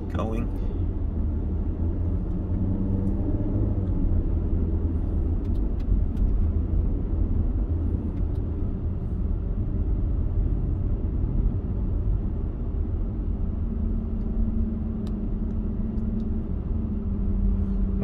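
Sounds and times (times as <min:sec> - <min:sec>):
car interior driving rumble: 0:00.0 - 0:18.0.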